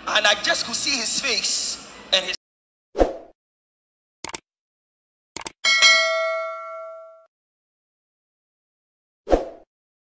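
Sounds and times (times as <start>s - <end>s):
notification bell ding: 5.6s - 7.3s.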